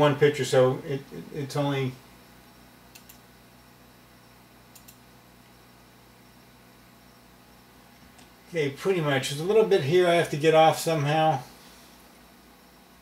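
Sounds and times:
low steady hum: 0.0 - 13.0
computer mouse clicks: 2.9 - 3.2, 4.7 - 5.0.

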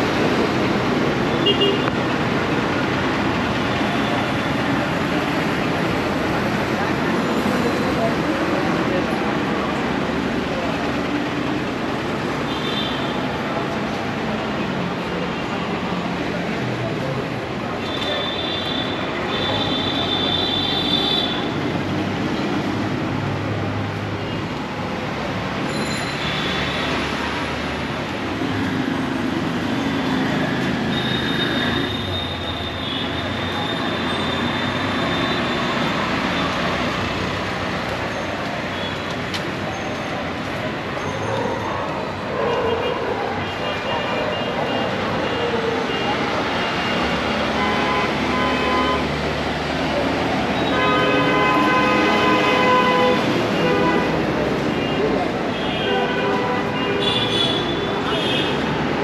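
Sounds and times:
road traffic: 0.0 - 59.0.

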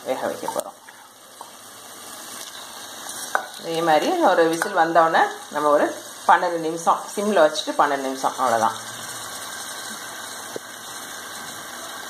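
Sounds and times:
meat sizzling in hot oil: 0.0 - 12.0.

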